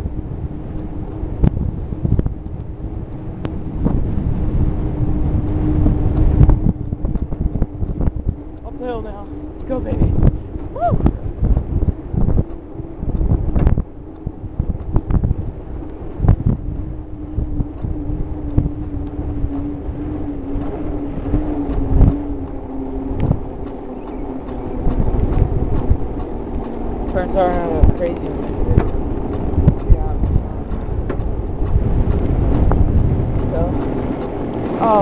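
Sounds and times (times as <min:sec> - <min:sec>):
bicycle tyre rolling on asphalt: 0:00.0 - 0:35.0
low hum: 0:00.0 - 0:35.0
wind buffeting microphone: 0:00.0 - 0:35.0.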